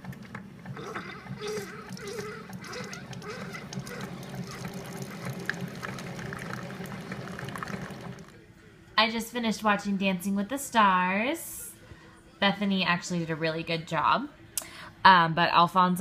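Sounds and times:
coffee maker humming: 0.0s - 8.4s
coffee pouring into mug: 2.6s - 8.4s.

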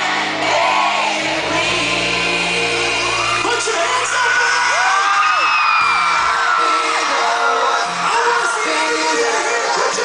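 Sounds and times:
live pop music with vocals: 0.0s - 10.0s
fans whooping and screaming: 2.7s - 10.0s.

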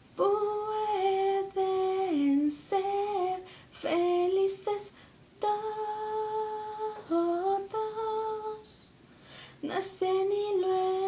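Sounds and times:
woman singing wordless melody: 0.0s - 9.0s, 9.6s - 11.0s.

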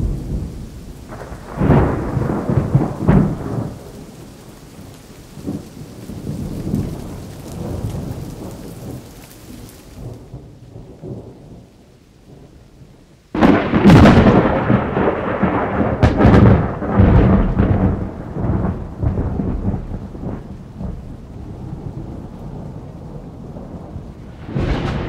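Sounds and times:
rain hiss: 0.0s - 25.0s
thunder crack and rumble: 0.0s - 25.0s.

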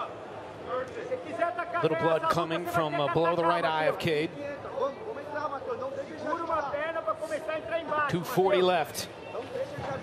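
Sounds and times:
man commentating: 1.1s - 4.6s.

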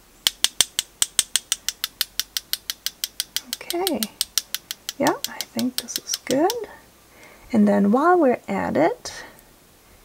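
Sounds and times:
paintbrush tapping on brush handle: 0.3s - 6.7s.

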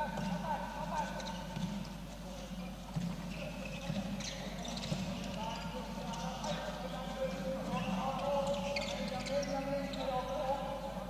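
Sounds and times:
ball bouncing on court: 0.0s - 2.0s, 2.9s - 5.7s
footsteps on court floor: 0.0s - 10.1s.

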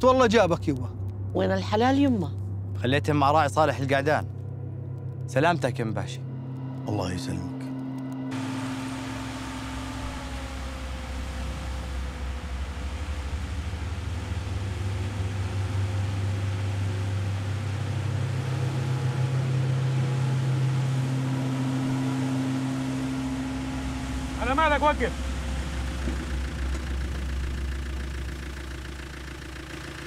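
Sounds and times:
truck engines rumbling: 0.0s - 30.0s.

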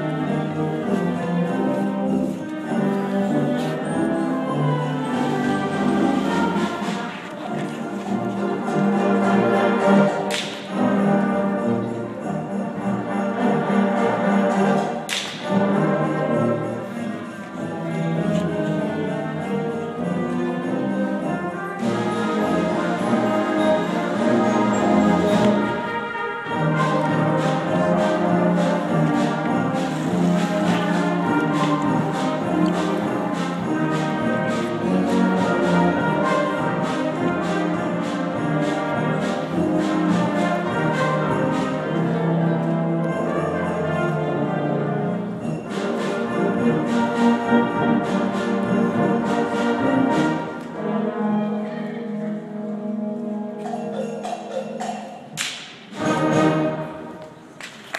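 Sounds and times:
concert band playing: 0.0s - 51.6s
steady percussive strikes: 0.0s - 51.6s, 52.4s - 57.9s.

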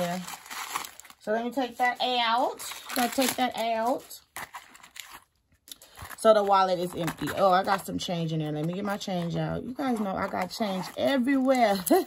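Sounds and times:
paper rustling: 0.0s - 11.9s.

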